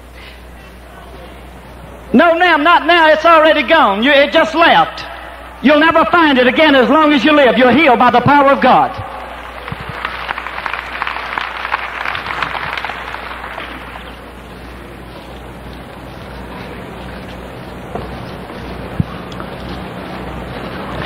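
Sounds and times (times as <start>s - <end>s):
background hubbub: 0.0s - 2.2s
low hum: 8.7s - 21.0s
congregation applauding: 9.2s - 14.4s.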